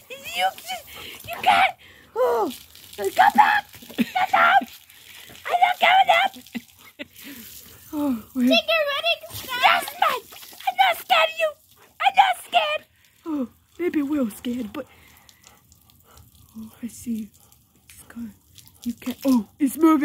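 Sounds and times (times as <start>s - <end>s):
person vocalizing high-pitched: 0.0s - 4.7s
garden hose spraying water: 0.0s - 20.0s.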